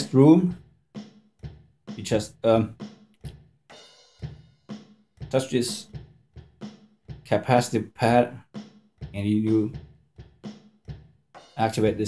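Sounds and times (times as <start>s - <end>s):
drum beat: 0.0s - 12.0s.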